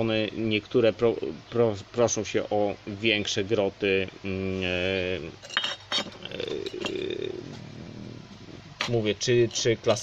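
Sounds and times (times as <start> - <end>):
ceramic caves clinking: 5.3 - 7.4, 8.8 - 10.0.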